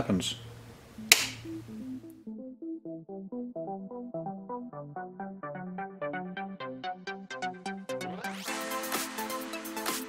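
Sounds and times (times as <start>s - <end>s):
plucked synth music: 0.9s - 10.0s
power switch click: 1.1s - 1.5s.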